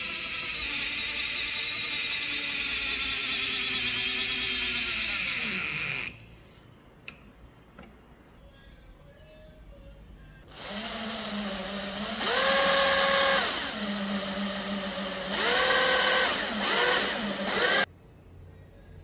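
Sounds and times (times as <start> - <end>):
power drill boring into wood: 0.0 - 6.2, 10.5 - 17.9.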